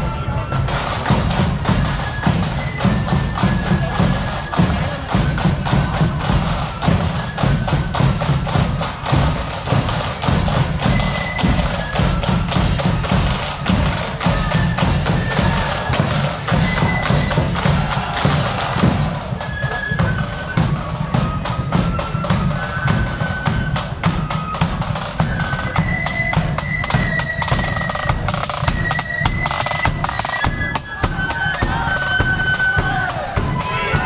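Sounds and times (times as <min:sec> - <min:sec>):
drums beating steady rhythm: 0:00.0 - 0:34.0
marching band music: 0:00.0 - 0:34.0.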